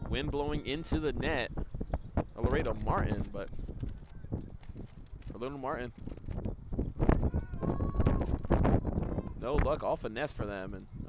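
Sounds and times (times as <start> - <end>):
wind gusting on microphone: 0.0 - 11.0.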